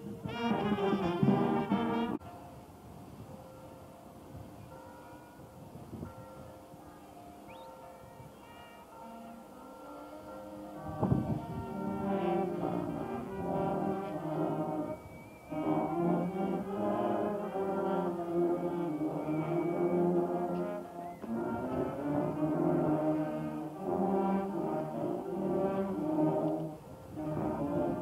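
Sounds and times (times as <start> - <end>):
marching brass band: 0.0 - 2.3, 8.6 - 28.0.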